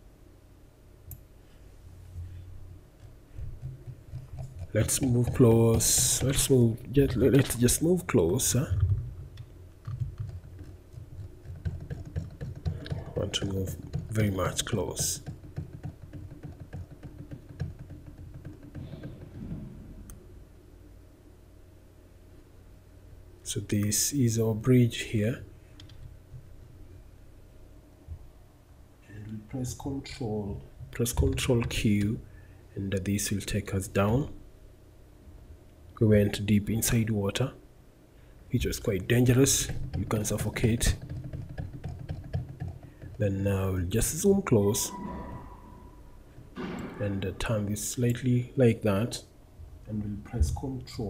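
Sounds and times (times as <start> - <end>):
steady low hum: 0.0 - 51.0
keyboard and mouse clicks: 3.0 - 7.6, 8.7 - 19.4, 39.4 - 43.2.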